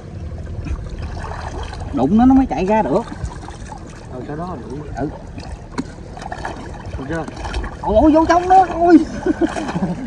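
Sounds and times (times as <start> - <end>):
river water sloshing: 0.0 - 10.0.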